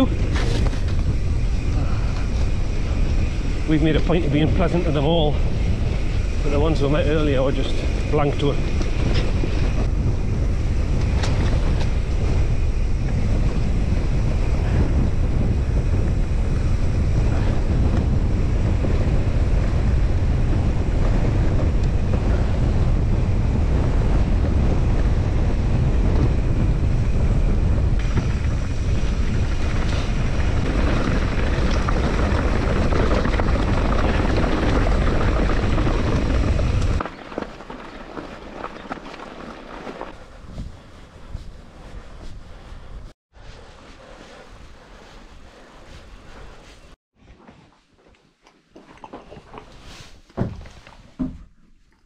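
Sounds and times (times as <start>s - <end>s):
bike rattling over rough ground: 0.0s - 42.0s
wind buffeting microphone: 0.0s - 47.0s.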